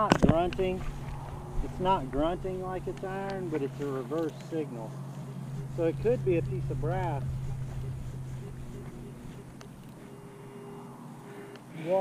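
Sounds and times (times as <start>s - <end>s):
metal detector tones: 0.0s - 12.0s.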